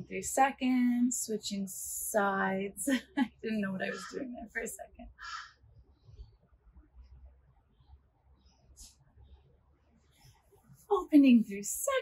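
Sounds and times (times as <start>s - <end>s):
faint outdoor background: 0.0s - 12.0s
crow cawing: 5.2s - 5.6s.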